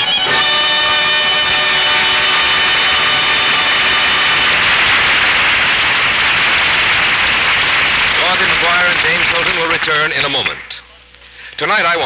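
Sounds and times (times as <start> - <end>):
sustained music chord: 0.0 - 6.3
loud steady rushing noise: 0.9 - 9.6.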